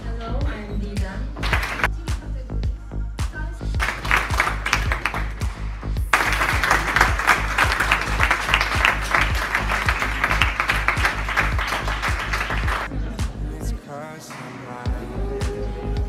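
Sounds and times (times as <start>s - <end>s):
background music with steady beat: 0.0s - 16.0s
audience clapping: 1.4s - 1.9s, 3.8s - 12.9s.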